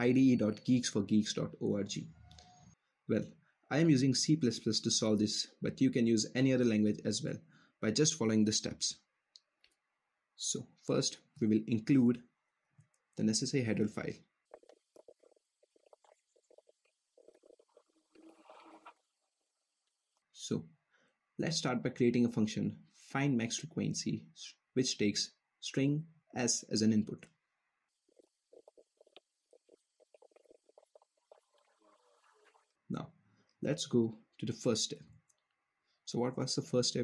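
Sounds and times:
faint keyboard typing: 0:13.7 - 0:19.0, 0:27.1 - 0:32.6.

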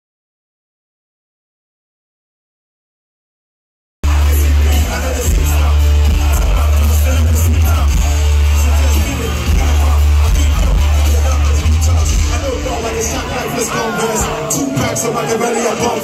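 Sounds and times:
heavy bass-driven beat: 0:04.0 - 0:16.0
rap vocals over a beat: 0:04.0 - 0:16.0.

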